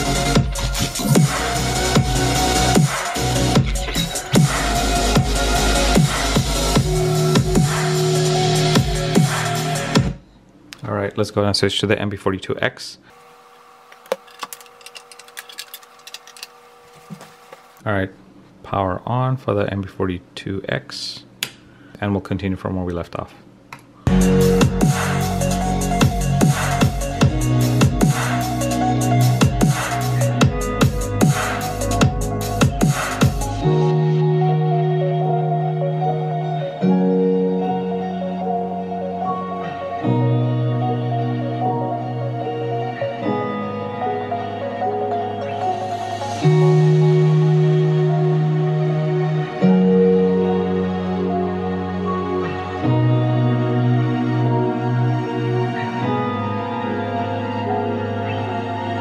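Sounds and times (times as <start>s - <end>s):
music through speakers: 0.0s - 10.2s, 24.1s - 51.4s.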